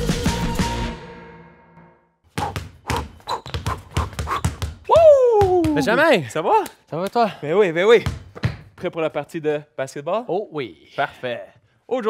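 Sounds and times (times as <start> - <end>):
basketball bouncing on hard floor: 2.3 - 5.9, 8.0 - 8.9.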